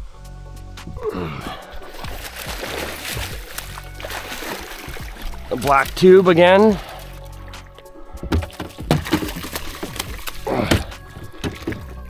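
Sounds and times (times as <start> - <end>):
fish splashing in a net: 1.7 - 6.0, 6.6 - 12.0
net and rod knocking hull: 1.8 - 12.0.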